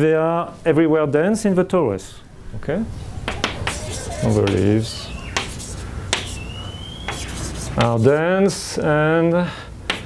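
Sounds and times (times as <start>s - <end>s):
chalk squeaking on blackboard: 3.2s - 8.2s
chalk tapping on blackboard: 3.3s - 4.7s, 5.3s - 8.2s.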